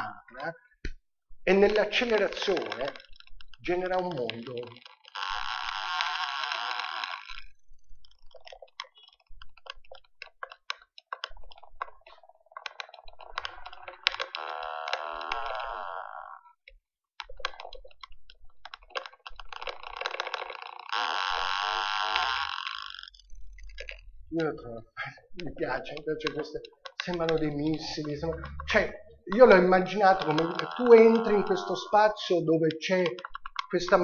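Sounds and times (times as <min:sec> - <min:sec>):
faint clicks: 0:00.4 - 0:15.9, 0:25.4 - 0:34.0
electronic noise texture: 0:27.2 - 0:32.3.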